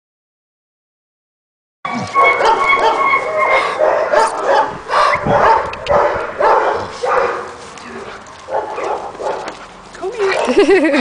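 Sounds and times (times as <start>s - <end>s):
dog barking and yipping: 2.1s - 7.6s, 8.4s - 9.6s.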